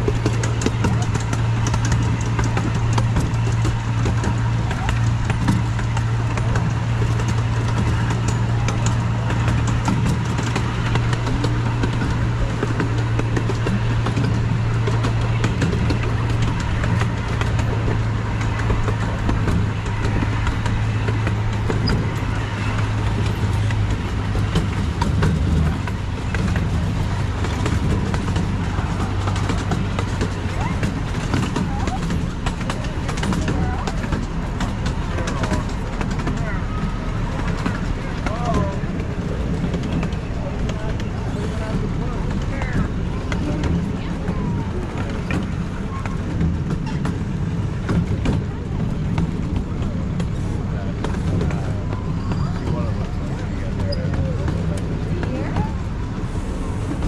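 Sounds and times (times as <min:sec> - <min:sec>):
faint passengers' voices: 0:00.0 - 0:57.0
miniature train engine drone: 0:00.0 - 0:57.0
train cars rattling on rails: 0:00.0 - 0:57.0.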